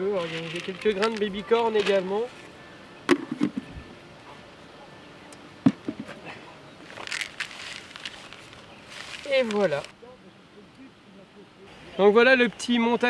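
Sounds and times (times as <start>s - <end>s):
plastic bucket knocks and clicks: 3.1s - 3.6s
rustle of hand in groundbait: 6.8s - 9.9s.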